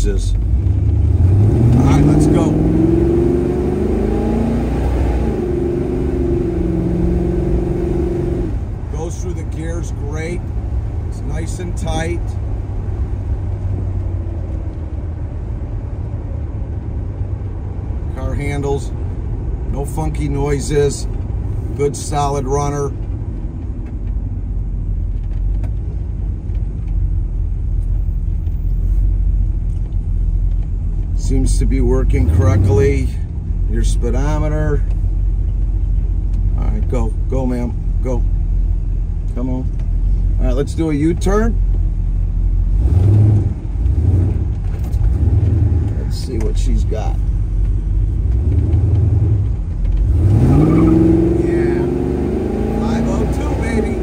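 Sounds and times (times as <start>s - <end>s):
car engine pulling away: 0.2s - 37.0s, 37.8s - 54.0s.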